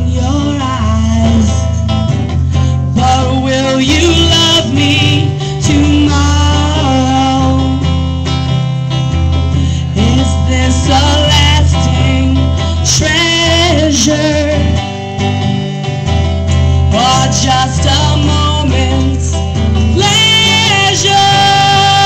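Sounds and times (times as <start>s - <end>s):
woman singing: 0.0s - 2.0s, 2.6s - 8.1s, 9.8s - 15.4s, 16.8s - 22.0s
electric guitar chords: 0.0s - 22.0s.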